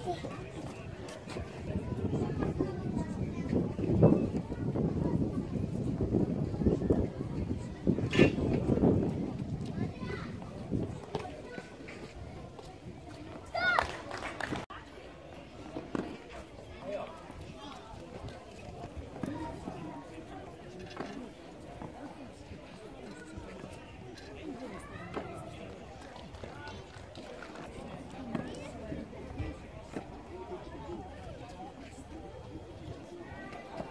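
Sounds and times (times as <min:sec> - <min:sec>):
background voices talking: 0:00.0 - 0:33.9
faint background chatter: 0:00.0 - 0:33.9.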